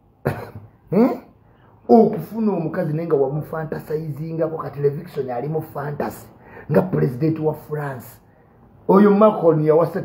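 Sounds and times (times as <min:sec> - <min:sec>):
man coughing: 0:00.2 - 0:01.3
man speaking: 0:00.9 - 0:01.3, 0:01.9 - 0:10.0.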